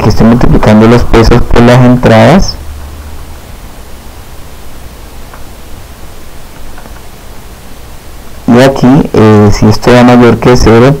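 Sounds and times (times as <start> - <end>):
low hum: 0.0 - 9.7
microphone hiss: 0.0 - 11.0.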